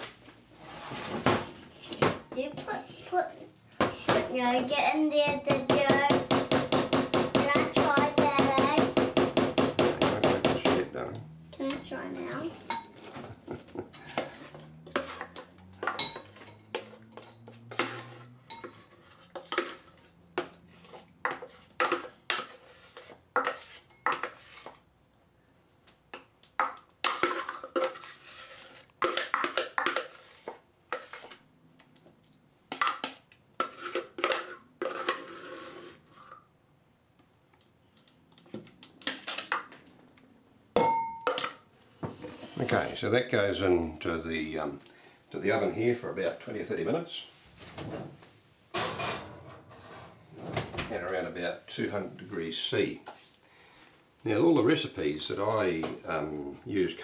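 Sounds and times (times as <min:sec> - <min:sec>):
spoon scraping plastic bowl: 0:11.6 - 0:24.8, 0:27.1 - 0:31.5, 0:32.7 - 0:36.5.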